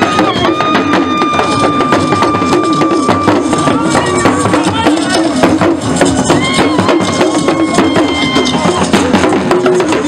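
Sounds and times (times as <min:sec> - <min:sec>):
talking drums beaten rapidly: 0:00.0 - 0:10.0.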